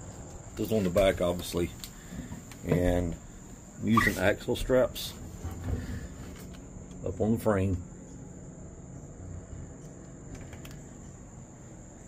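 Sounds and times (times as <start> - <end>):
low hum: 5.1 - 12.0.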